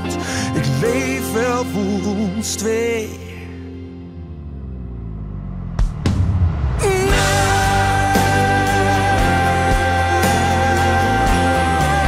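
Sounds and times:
bass and keyboard: 0.0s - 12.0s
full band playing: 6.8s - 12.0s.

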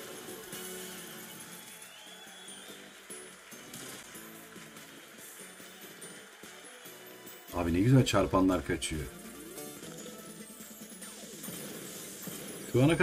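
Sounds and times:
slot game music: 2.7s - 13.0s.

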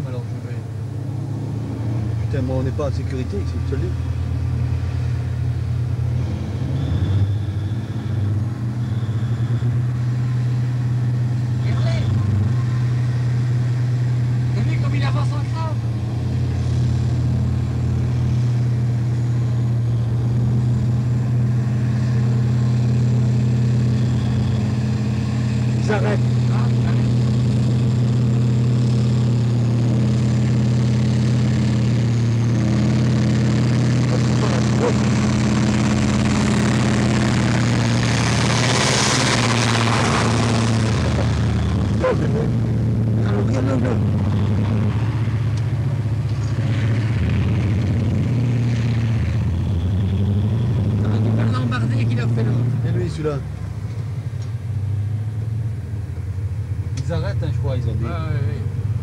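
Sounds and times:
vehicle engine droning: 0.0s - 59.0s.

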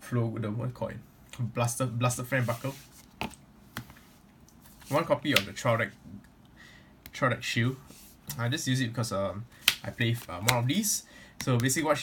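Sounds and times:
cards clicking set down: 9.6s - 10.7s
trading cards handled: 9.6s - 10.8s.

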